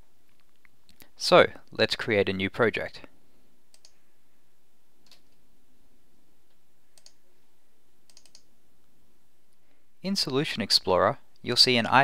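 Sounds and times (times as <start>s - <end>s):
low room hum: 0.0s - 12.0s
computer mouse clicks: 3.7s - 4.0s, 5.0s - 5.4s, 7.0s - 7.2s, 8.1s - 8.5s.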